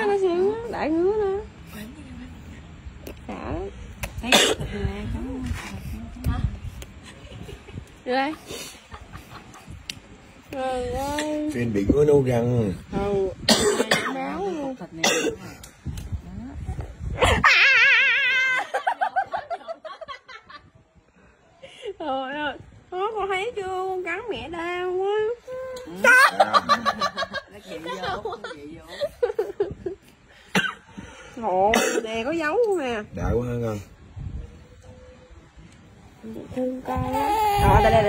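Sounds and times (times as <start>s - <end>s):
person coughing: 13.5s - 14.1s, 15.0s - 15.4s, 31.7s - 32.0s
person laughing: 26.0s - 27.4s.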